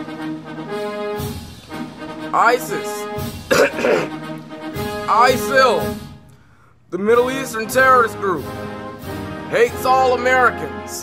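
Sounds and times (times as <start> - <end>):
background music with held notes: 0.0 - 11.0
man coughing: 3.5 - 4.2.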